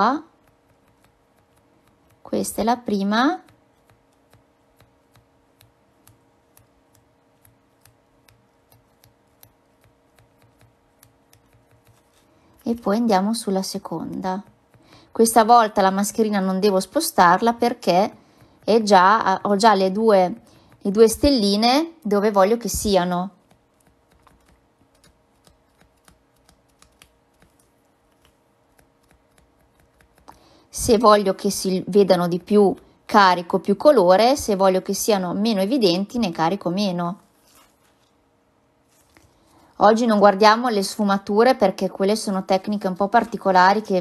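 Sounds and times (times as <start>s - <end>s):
faint steady hum: 0.0s - 44.0s
sponge dabbing soft taps: 0.3s - 2.3s, 3.4s - 12.6s, 13.9s - 15.1s.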